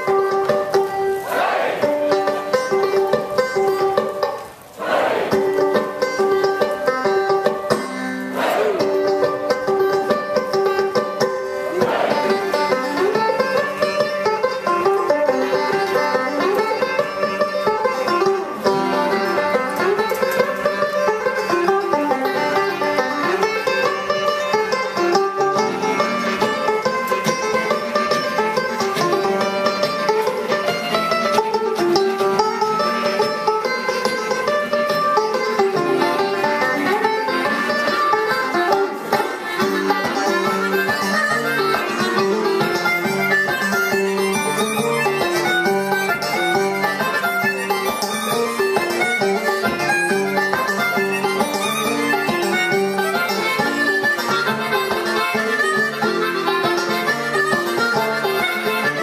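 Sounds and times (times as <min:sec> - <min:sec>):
banjo: 0:00.0 - 0:59.0
harmonica: 0:35.6 - 0:59.0.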